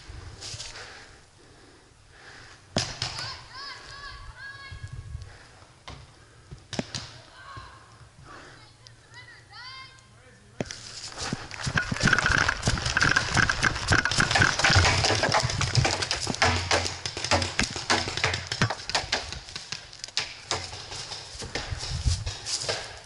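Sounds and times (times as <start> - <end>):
hard breathing: 0.3 - 2.7
footsteps running through dry leaves: 10.8 - 16.5.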